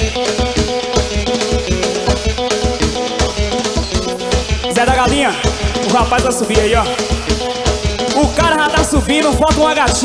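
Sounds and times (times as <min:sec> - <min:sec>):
drum kit with bass beat: 0:00.0 - 0:10.0
plucked guitar: 0:00.0 - 0:10.0.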